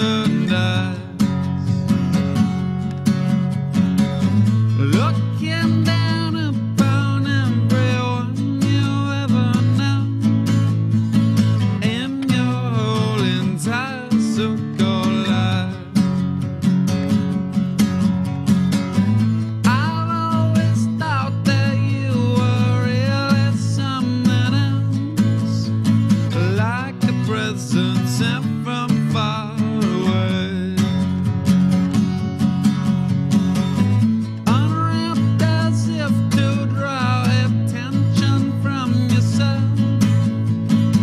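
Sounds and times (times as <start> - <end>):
man singing: 0.0 - 2.1, 4.7 - 10.9, 11.5 - 16.2, 19.6 - 31.2, 34.4 - 41.0
acoustic guitar strumming: 0.0 - 41.0.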